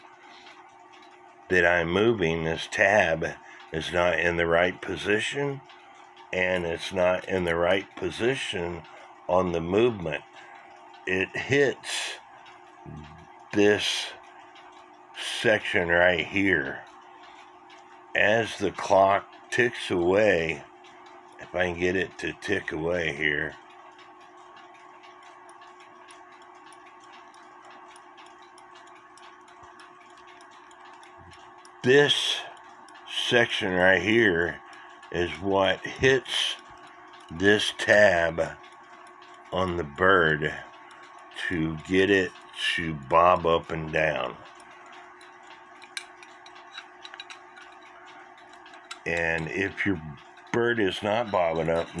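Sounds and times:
clock ticking: 0:00.0 - 0:52.0
steady low hum: 0:00.0 - 0:52.0
sharp click: 0:43.6 - 0:52.0.

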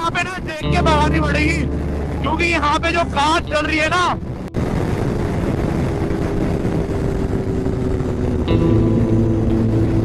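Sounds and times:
rushing wind: 0:00.0 - 0:10.0
motorcycle engine cruising: 0:04.2 - 0:10.0.

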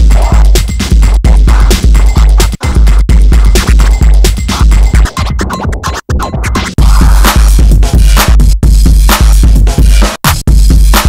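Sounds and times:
heavy bass kick: 0:00.0 - 0:05.0, 0:06.8 - 0:11.0
electronic dance music: 0:00.0 - 0:11.0
record scratching: 0:00.0 - 0:11.0.

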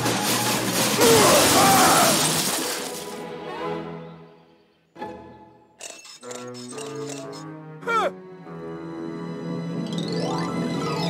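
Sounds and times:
loud crash: 0:00.0 - 0:03.2
cartoon background music: 0:03.0 - 0:11.0
musical notes: 0:06.4 - 0:11.0.

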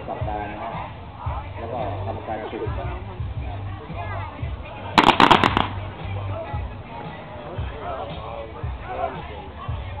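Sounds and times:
rifle shots: 0:05.0 - 0:05.8.

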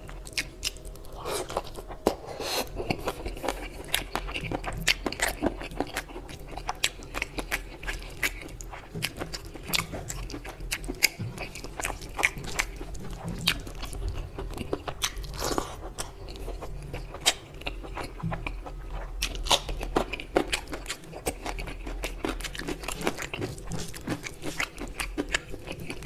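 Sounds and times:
person chewing food: 0:00.0 - 0:26.0.

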